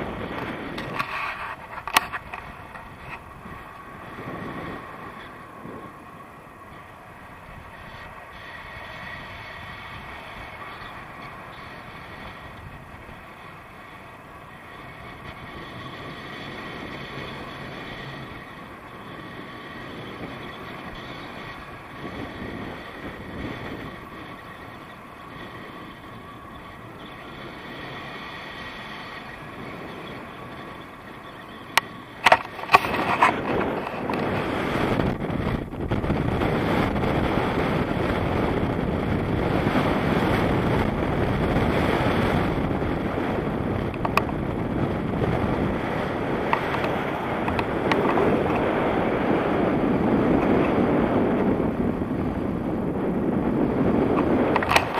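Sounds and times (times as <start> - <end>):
wind rushing on microphone: 0.0 - 54.9.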